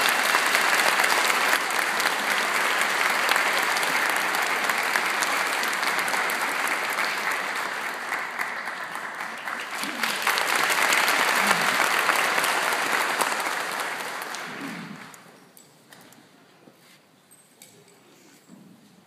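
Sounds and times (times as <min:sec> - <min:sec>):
audience applauding: 0:00.0 - 0:15.3.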